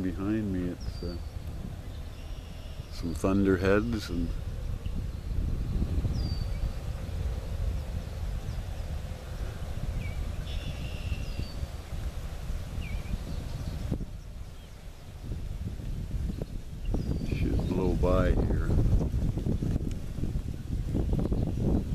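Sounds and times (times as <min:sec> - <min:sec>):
faint bird chirps: 0:00.0 - 0:12.0, 0:12.7 - 0:15.2, 0:16.2 - 0:18.0
wind buffeting microphone: 0:00.0 - 0:21.9.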